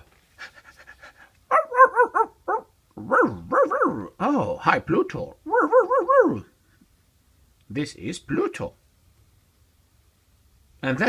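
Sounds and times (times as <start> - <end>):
person imitating dog yaps: 1.5 - 4.1, 5.4 - 6.5.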